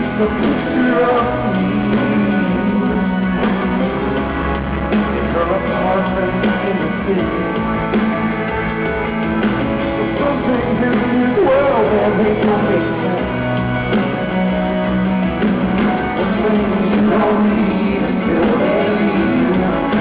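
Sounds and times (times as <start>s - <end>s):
person singing: 0.0s - 8.8s, 9.8s - 14.8s, 15.9s - 20.0s
drums: 0.0s - 20.0s
electric guitar: 0.0s - 20.0s.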